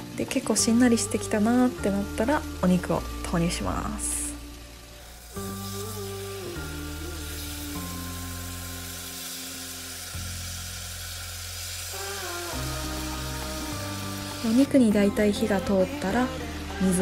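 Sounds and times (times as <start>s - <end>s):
background music of held notes: 0.0s - 17.0s
food sizzling in a frying pan: 0.0s - 17.0s.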